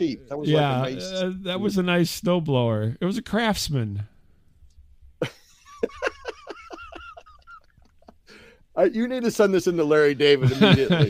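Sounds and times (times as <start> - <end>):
person laughing: 5.2 - 8.2, 10.4 - 11.0.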